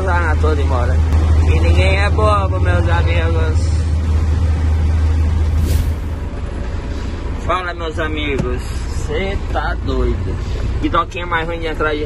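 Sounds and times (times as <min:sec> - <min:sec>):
short air hiss: 0:05.5 - 0:06.2.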